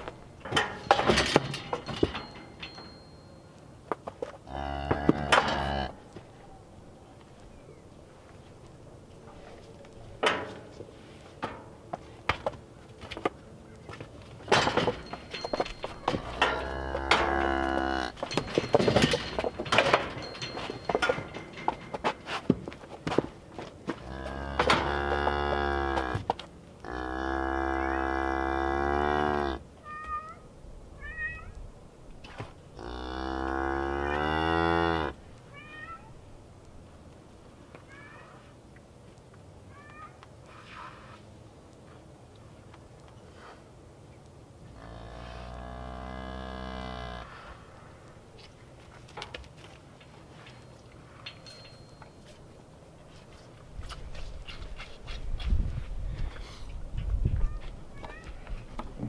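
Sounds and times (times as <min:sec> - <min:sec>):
knocks and clatter of steel chute: 0:00.0 - 0:03.2, 0:14.5 - 0:22.7
cattle mooing: 0:04.5 - 0:06.0, 0:16.4 - 0:18.2, 0:24.1 - 0:26.2, 0:26.8 - 0:29.6, 0:32.8 - 0:35.2, 0:44.8 - 0:47.4.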